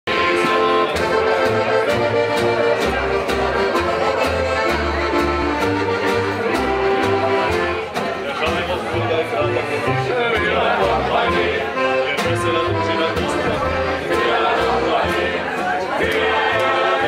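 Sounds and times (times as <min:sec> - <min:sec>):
instrumental acoustic music: 0:00.1 - 0:17.0.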